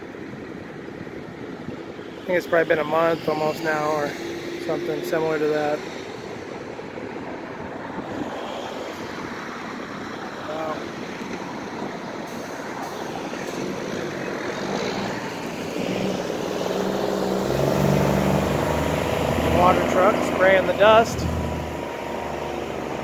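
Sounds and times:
construction equipment engines droning: 0:00.0 - 0:23.0
steady engine hum: 0:00.0 - 0:23.0.

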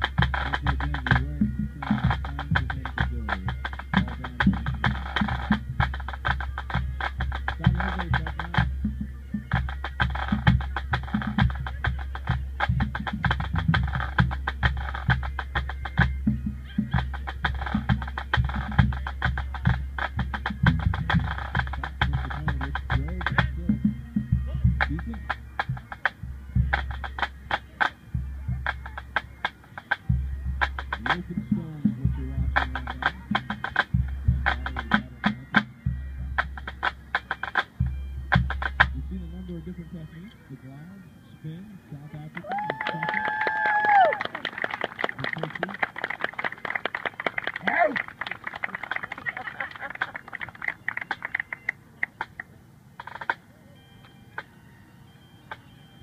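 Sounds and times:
bass drum beat: 0:00.0 - 0:39.8
tenor drums: 0:00.0 - 0:54.6, 0:55.4 - 0:56.0.

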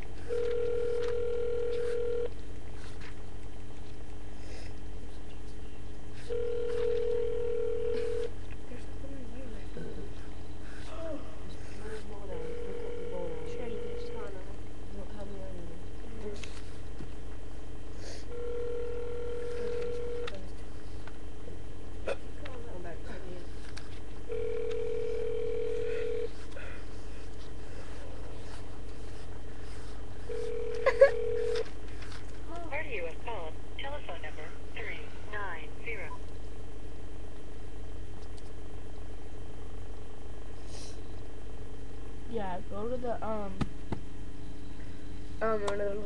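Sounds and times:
phone ringback tone: 0:00.3 - 0:02.3, 0:06.3 - 0:08.3, 0:12.4 - 0:14.3, 0:18.3 - 0:20.3, 0:24.3 - 0:26.3, 0:30.3 - 0:31.6.

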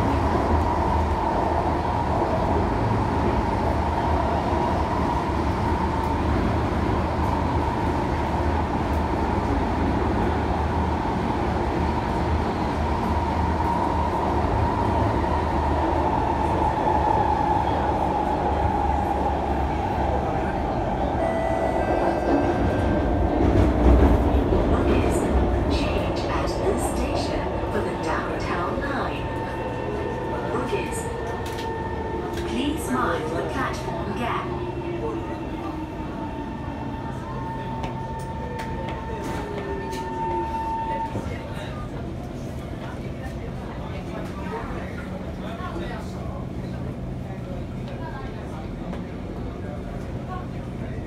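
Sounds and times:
train rumble and whine: 0:00.0 - 0:51.0.

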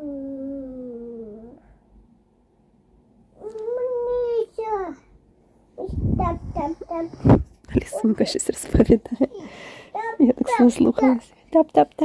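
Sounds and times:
child's drawn-out vocal sound: 0:00.0 - 0:01.6.

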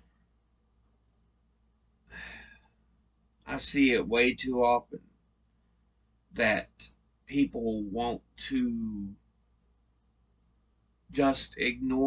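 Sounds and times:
man sighing: 0:02.1 - 0:02.6.

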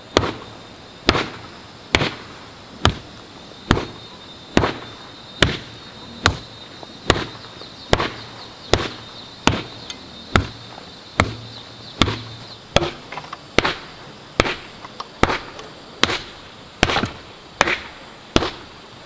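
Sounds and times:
hand tool thudding on packed soil: 0:10.3 - 0:10.6, 0:11.2 - 0:17.8.

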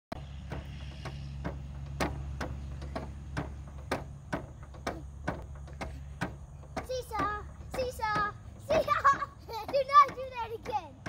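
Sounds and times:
spring seesaw creaking: 0:00.1 - 0:11.0
steady low hum: 0:00.1 - 0:11.0.

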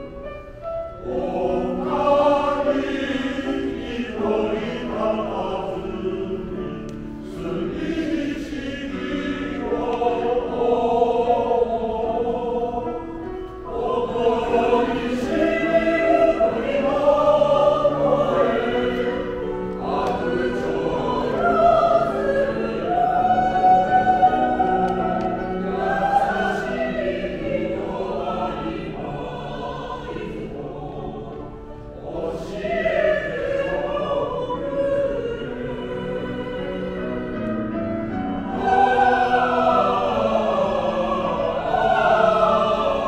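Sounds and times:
men's choir singing: 0:00.6 - 0:43.0.

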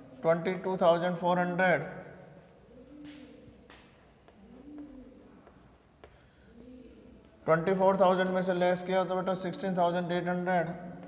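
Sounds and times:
pigeon cooing: 0:02.4 - 0:07.4.

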